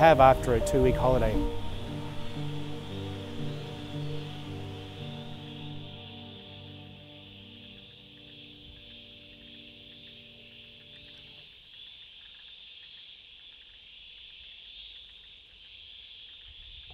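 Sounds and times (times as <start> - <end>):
held music chord: 0.0 - 11.4
insects chirping: 0.0 - 16.9.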